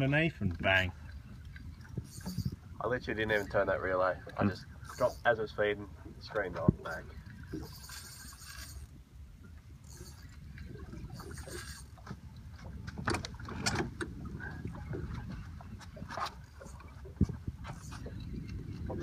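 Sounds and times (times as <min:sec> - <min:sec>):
water moving around boat: 0:00.0 - 0:19.0
wind rumbling on microphone: 0:00.0 - 0:19.0.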